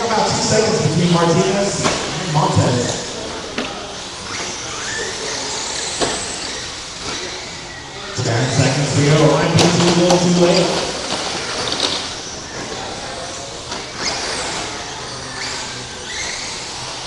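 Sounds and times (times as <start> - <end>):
announcer's voice in a hall: 0.0 - 3.5, 8.1 - 11.1
high whine of rc trucks: 0.0 - 17.0.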